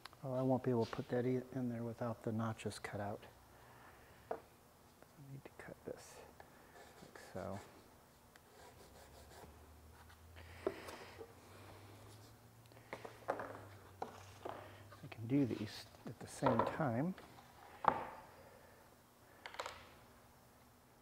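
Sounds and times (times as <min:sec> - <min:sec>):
faint pencil scratching: 0:06.7 - 0:07.8, 0:08.4 - 0:10.2.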